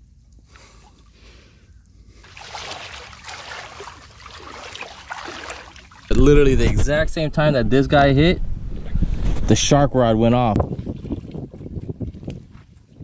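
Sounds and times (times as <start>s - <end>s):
shallow water sloshing and splashing: 2.0s - 6.2s, 10.6s - 13.0s.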